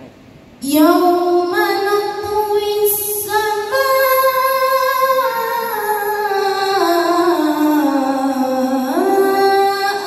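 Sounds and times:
person reciting melodically: 0.6s - 10.0s.

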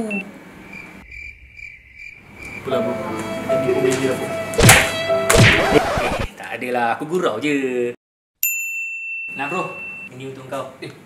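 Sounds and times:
crickets chirping: 0.6s - 3.5s.

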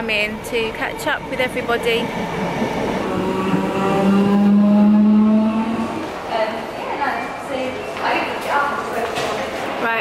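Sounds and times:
electric train motor whine: 1.7s - 6.1s.

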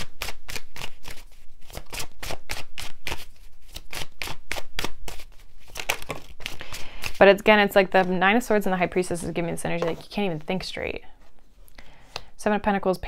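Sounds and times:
cards being shuffled: 0.1s - 7.2s.

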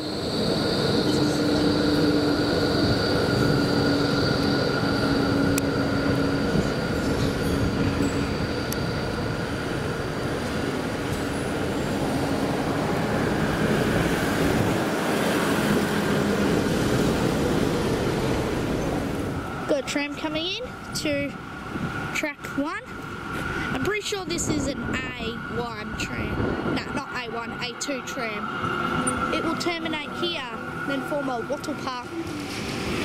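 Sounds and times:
tram rolling on rails: 0.0s - 33.0s.

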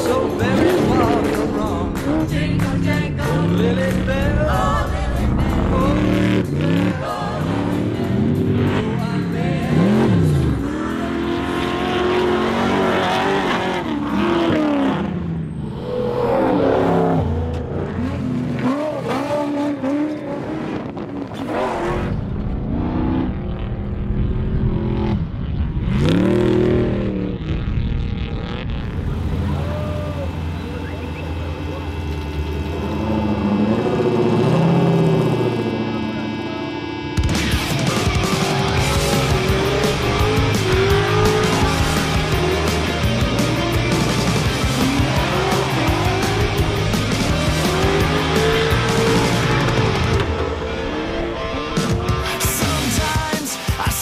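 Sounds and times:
music: 0.0s - 13.0s, 35.8s - 54.0s
truck engines revving and passing: 0.0s - 53.9s.

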